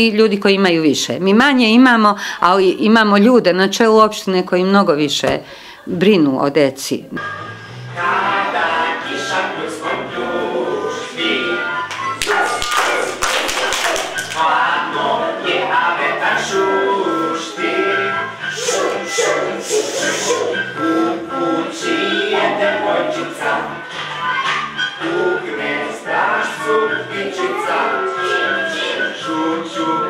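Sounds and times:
music: 7.0s - 30.0s
singing action song: 7.3s - 30.0s
people clapping hands: 11.8s - 14.6s.

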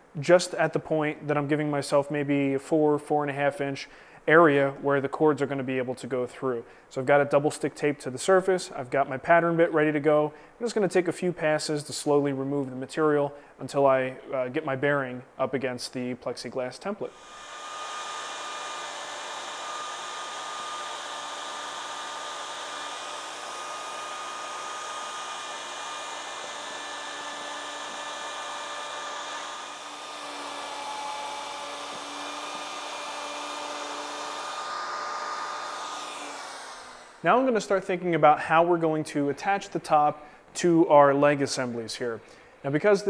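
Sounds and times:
router motor whining: 17.1s - 37.2s
router cutting wood: 17.1s - 37.7s.

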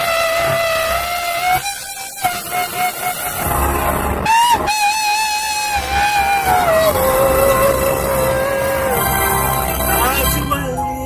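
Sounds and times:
backing music: 1.6s - 11.0s
man singing a long high note: 5.6s - 10.0s.

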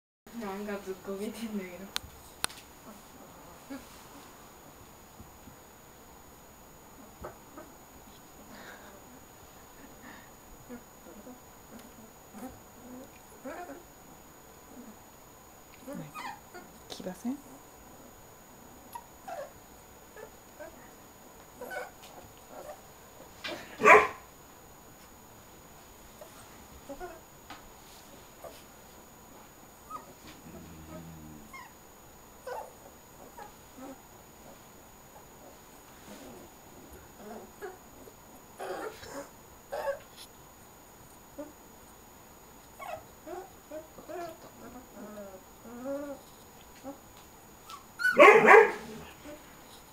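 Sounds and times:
puppy crying: 15.9s - 16.8s, 21.6s - 22.8s, 23.8s - 24.2s, 32.4s - 34.0s, 38.6s - 40.0s, 42.8s - 46.2s, 47.7s - 49.4s
puppies whimpering: 16.0s - 16.8s
puppies whimpering and squeaking: 16.0s - 16.8s, 21.6s - 22.0s, 29.9s - 30.2s, 32.5s - 34.0s, 38.6s - 40.1s, 42.8s - 47.0s, 47.6s - 48.2s.

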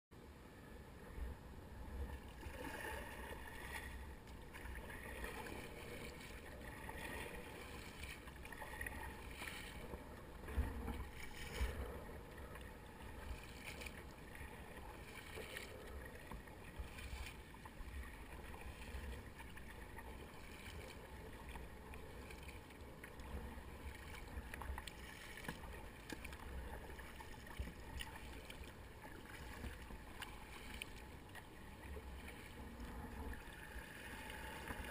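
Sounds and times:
water lapping against kayak hull: 0.8s - 34.9s
paddle blades splashing: 1.8s - 34.9s.

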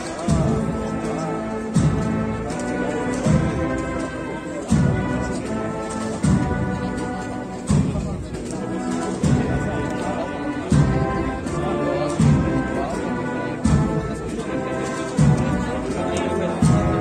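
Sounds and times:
brass band playing slow march: 0.0s - 17.0s
bass drum beats: 16.6s - 17.0s.

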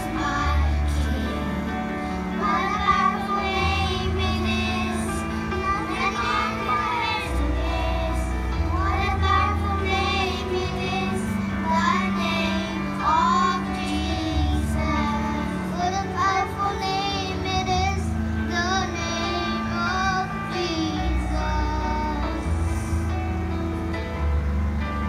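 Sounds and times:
children singing into microphones: 0.0s - 23.0s
backing music with bass line: 0.0s - 25.0s.

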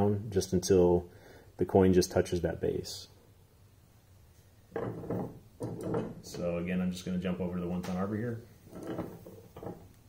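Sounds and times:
object sliding on workbench: 4.8s - 6.2s.

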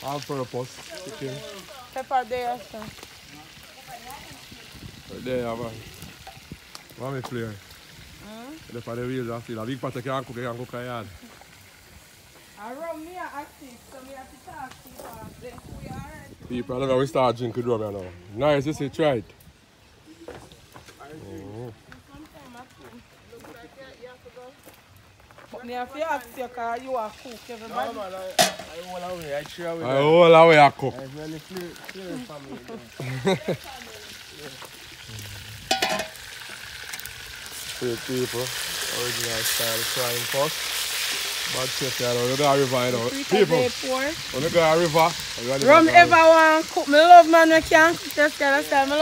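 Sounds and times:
meat sizzling in hot oil: 0.0s - 17.5s, 25.7s - 49.0s
faint steady hiss: 0.0s - 49.0s.

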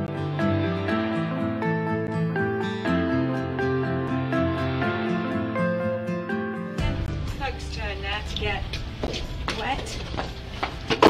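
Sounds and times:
horse hooves on hard ground: 8.2s - 11.0s.

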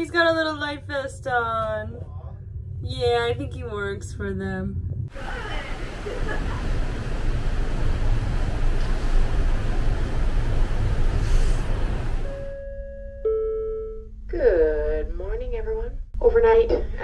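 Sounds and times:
deep rumble: 0.0s - 12.4s
chime-like tones: 12.2s - 14.1s.

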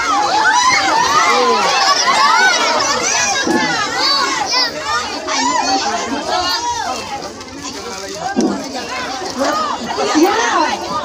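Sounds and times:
crowd of young people shouting: 0.0s - 7.4s.

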